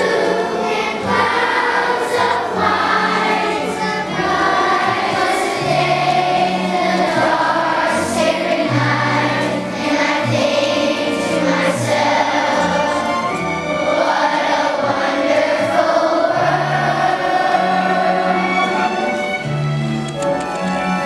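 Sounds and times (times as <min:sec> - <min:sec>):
children's choir singing: 0:00.0 - 0:19.6
instrumental accompaniment: 0:00.0 - 0:21.0.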